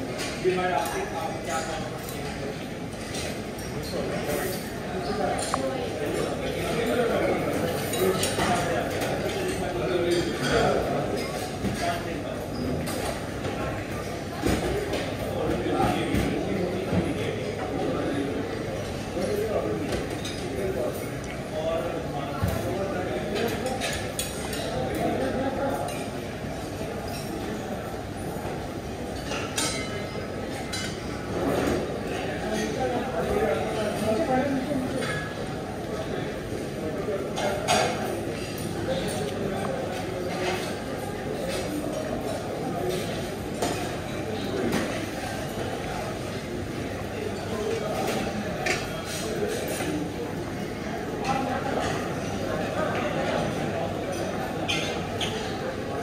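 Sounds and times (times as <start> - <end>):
murmur of chatter: 0.0 - 56.0
dishes and cutlery clinking: 0.2 - 17.7, 28.5 - 36.0, 36.6 - 50.2, 51.2 - 56.0.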